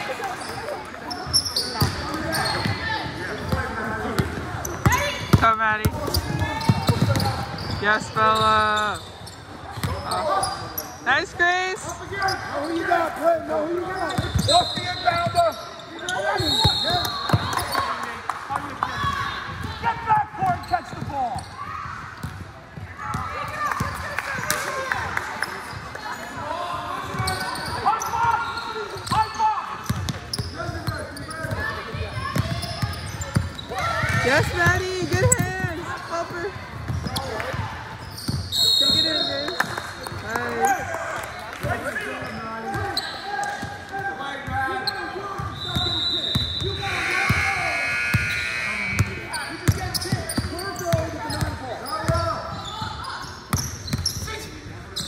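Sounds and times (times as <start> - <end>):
sneakers squeaking: 0.0 - 18.1, 18.8 - 24.7, 25.3 - 55.0
echoing voices and calls: 44.9 - 50.7.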